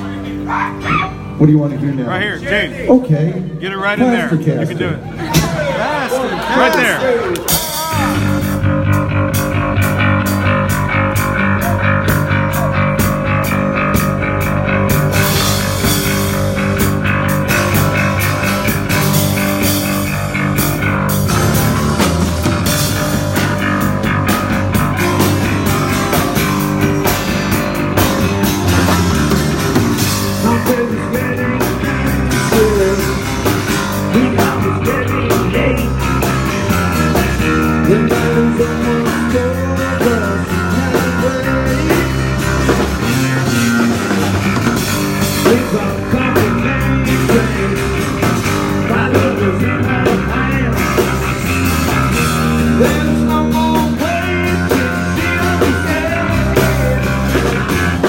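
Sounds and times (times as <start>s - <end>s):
live rock band playing: 0.0s - 58.0s
man singing: 30.0s - 44.4s, 45.1s - 58.0s.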